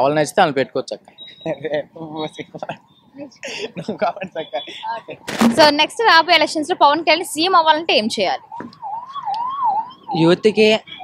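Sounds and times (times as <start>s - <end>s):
siren-like wavering tone: 4.3s - 11.0s.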